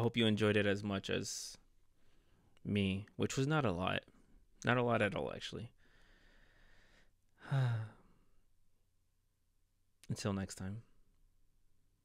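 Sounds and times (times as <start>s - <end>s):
man sighing: 7.4s - 8.3s.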